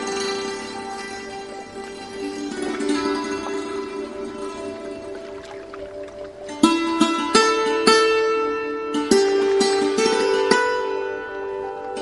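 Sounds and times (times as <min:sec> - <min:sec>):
string instrument slow notes: 0:00.0 - 0:12.0.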